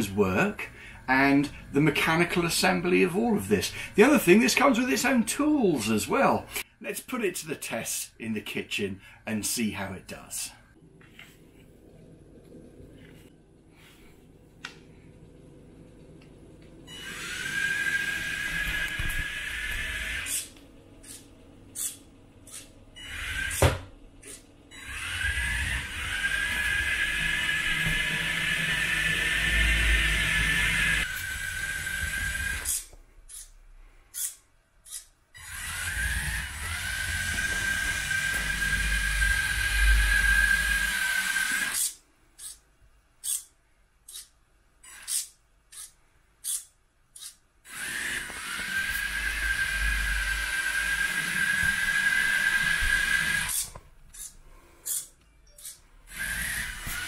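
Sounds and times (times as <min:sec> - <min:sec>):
high whine of small motors: 0:16.8 - 0:33.5, 0:34.2 - 0:42.6, 0:47.2 - 0:57.0.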